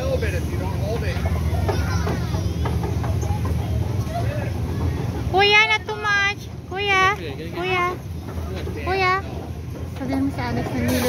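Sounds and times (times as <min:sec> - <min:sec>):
low steady rumble: 0:00.0 - 0:11.0
children's voices: 0:01.0 - 0:08.1.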